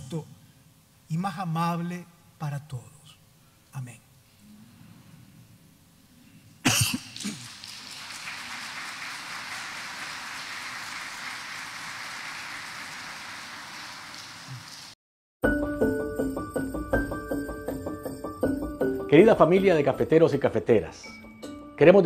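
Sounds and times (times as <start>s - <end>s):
congregation applauding: 6.7s - 15.0s.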